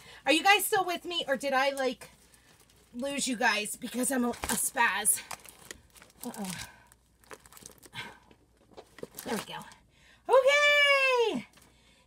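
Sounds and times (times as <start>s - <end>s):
stiff sheet crinkling and rustling: 1.7s - 9.8s.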